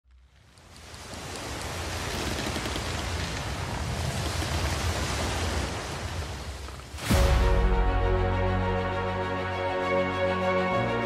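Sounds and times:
sea water rushing: 0.4s - 11.0s
low rumble: 7.0s - 9.6s.

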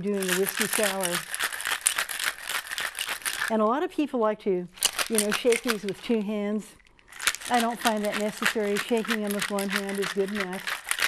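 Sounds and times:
ice rattling in cocktail shaker: 0.0s - 3.6s, 4.8s - 6.5s, 7.1s - 11.0s.

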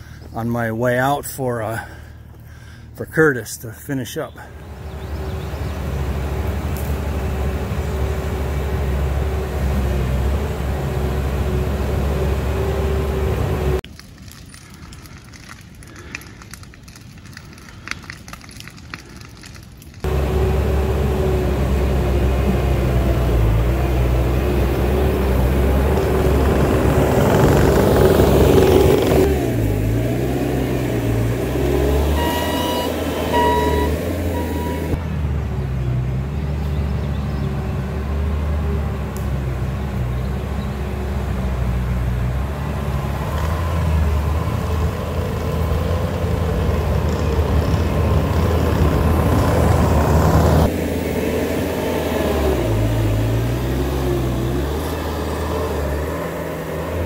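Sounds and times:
diesel engine under load: 0.0s - 57.0s
backup alarm beeps: 32.2s - 35.0s.

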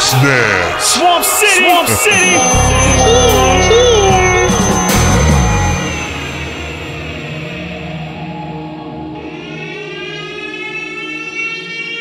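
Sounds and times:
siren-like rising tone: 1.8s - 10.0s.

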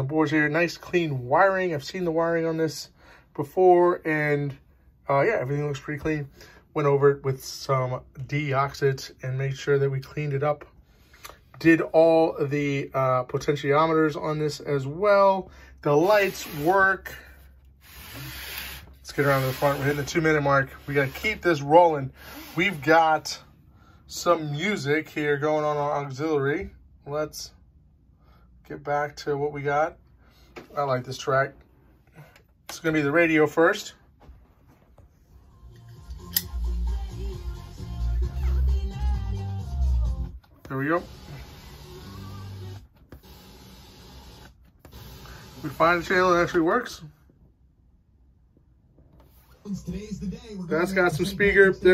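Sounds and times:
radio static hiss: 40.8s - 42.1s
faint radio broadcast: 49.5s - 51.9s.

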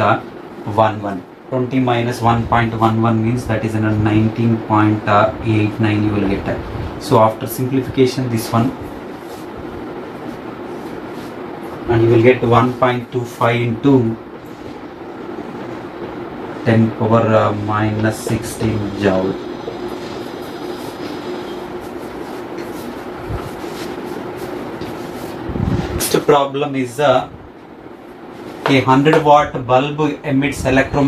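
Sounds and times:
room noise hum and hiss: 0.0s - 31.0s.

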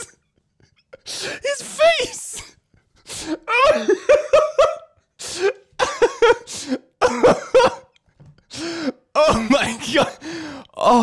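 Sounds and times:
man laughing hard: 0.0s - 10.2s.

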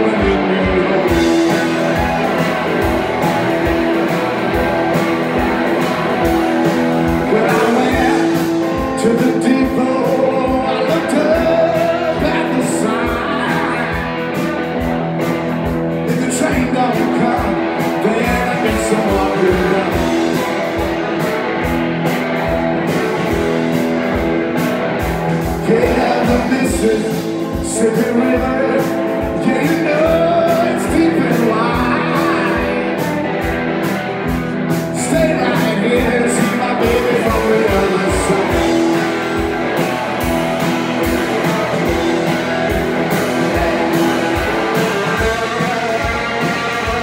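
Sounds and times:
drum kit with cymbals: 0.0s - 47.0s
electric guitars: 0.0s - 47.0s.

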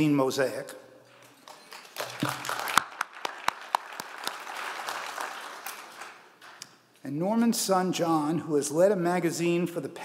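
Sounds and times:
audience applauding: 1.3s - 6.6s.

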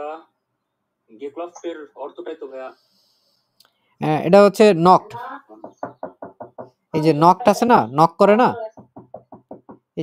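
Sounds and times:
knocking on a door: 5.5s - 6.8s, 8.6s - 10.0s.

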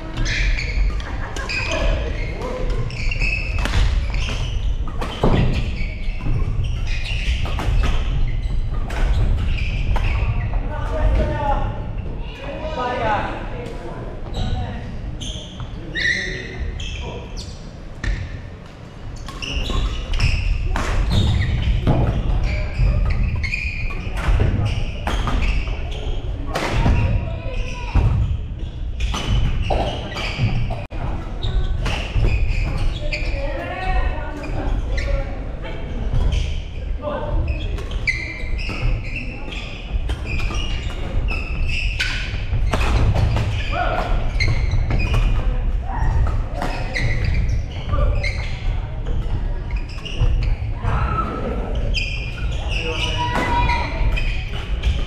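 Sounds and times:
players' voices: 0.0s - 55.0s.

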